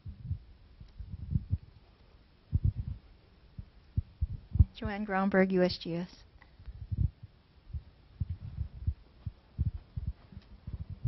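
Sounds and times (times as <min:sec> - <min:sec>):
microphone handling thumps: 0:00.0 - 0:01.7, 0:02.5 - 0:03.0, 0:03.6 - 0:04.9, 0:06.7 - 0:11.0.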